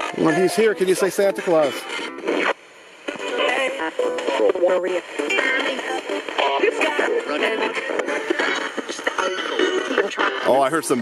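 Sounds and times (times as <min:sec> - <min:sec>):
choppy christmas music: 0:00.0 - 0:01.9
radio sweeping between stations: 0:00.0 - 0:11.0
voices: 0:03.3 - 0:11.0.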